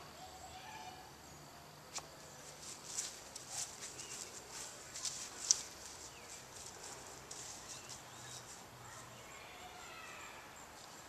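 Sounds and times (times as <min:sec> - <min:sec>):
quiet outdoor ambience: 0:00.0 - 0:11.0
footsteps on grass: 0:01.9 - 0:08.7.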